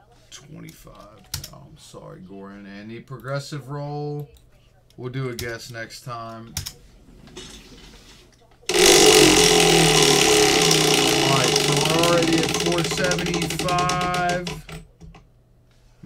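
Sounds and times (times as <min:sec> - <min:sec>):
prize wheel flapper clicking: 0:08.7 - 0:15.2.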